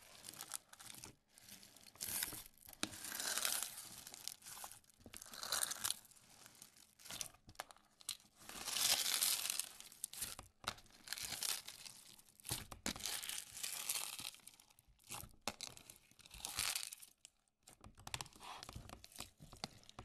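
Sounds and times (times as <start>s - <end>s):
bead slime crackling and crunching: 0.0s - 17.3s.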